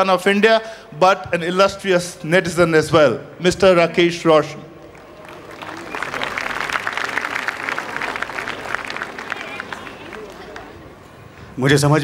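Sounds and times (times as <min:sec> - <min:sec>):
audience applauding: 0:04.7 - 0:11.1.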